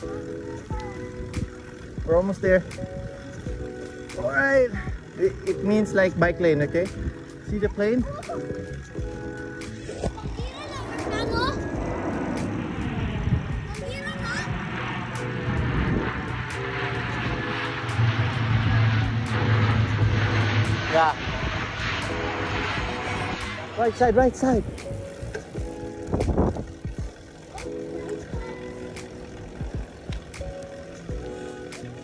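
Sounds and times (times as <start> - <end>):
propeller airplane droning overhead: 0.0 - 32.0.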